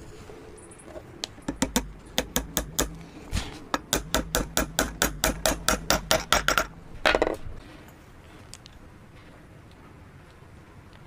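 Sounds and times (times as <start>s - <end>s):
hammer tapping wooden dowel: 1.5s - 3.0s, 3.8s - 6.7s.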